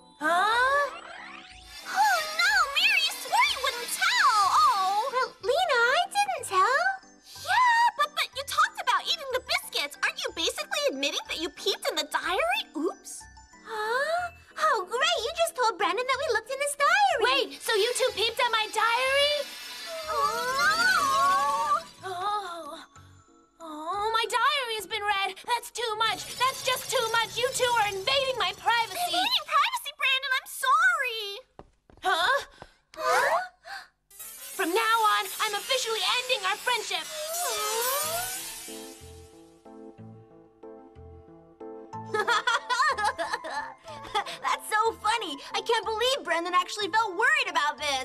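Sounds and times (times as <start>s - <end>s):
jingly children's music: 0.0s - 30.9s, 41.0s - 48.0s.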